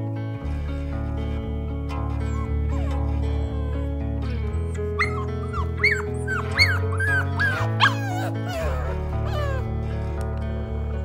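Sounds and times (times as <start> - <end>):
background music with bass: 0.0 - 11.0
puppy whimpering and yipping: 2.2 - 4.0, 4.7 - 9.7.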